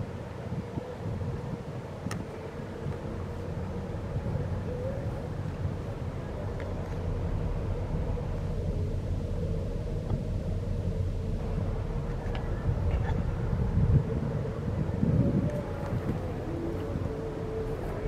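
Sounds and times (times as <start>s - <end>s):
faint mechanical hum: 0.0s - 18.0s
wind buffeting microphone: 0.0s - 18.0s.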